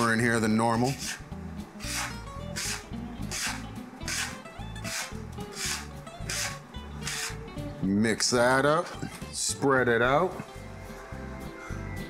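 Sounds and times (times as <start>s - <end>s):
background music: 0.0s - 12.0s
bench scraper rasping on wooden board: 0.8s - 7.4s.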